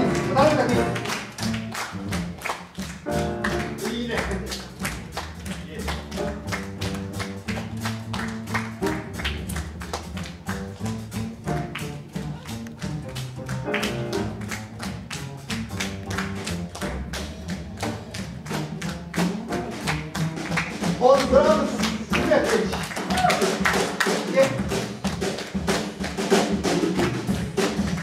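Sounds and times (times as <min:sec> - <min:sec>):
plucked double bass: 0:00.0 - 0:22.8, 0:24.4 - 0:28.0.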